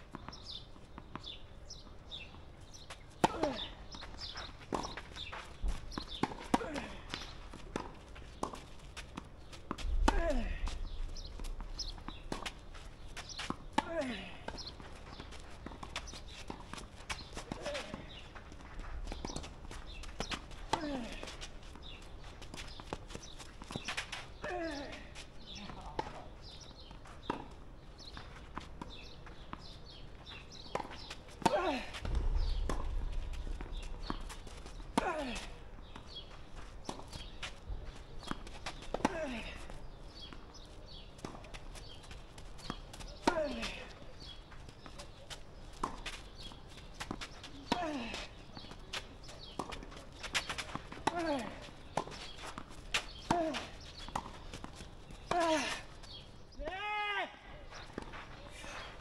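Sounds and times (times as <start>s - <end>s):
tennis ball popping off rackets: 30.7s - 37.4s
scuffing footsteps: 31.8s - 38.0s
low rumble: 32.0s - 35.0s.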